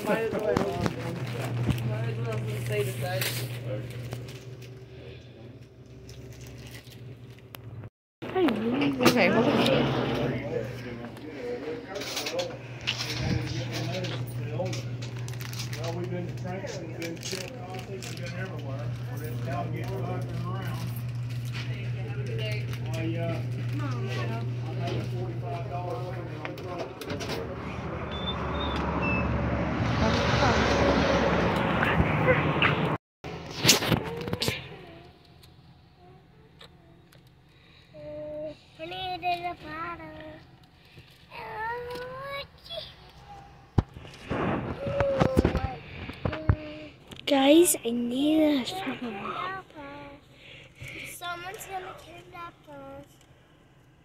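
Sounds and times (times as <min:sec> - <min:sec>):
rushing noise with low rumble: 0:27.4 - 0:33.0.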